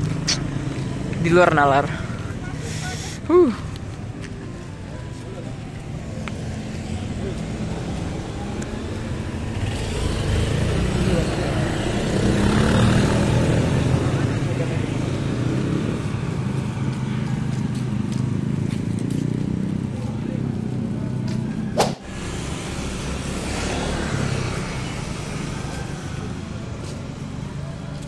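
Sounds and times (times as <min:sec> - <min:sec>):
cars passing: 0:00.0 - 0:28.0
motorcycles and scooters passing: 0:00.0 - 0:28.0.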